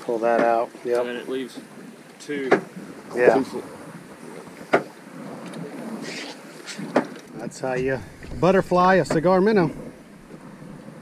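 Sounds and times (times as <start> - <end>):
sea noise: 0.0 - 11.0
wind: 0.0 - 11.0.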